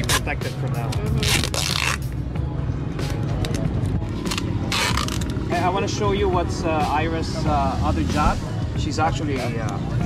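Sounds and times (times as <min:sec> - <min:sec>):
background music: 0:00.0 - 0:10.0
adhesive tape pulled off roll: 0:01.2 - 0:02.0, 0:04.3 - 0:05.3.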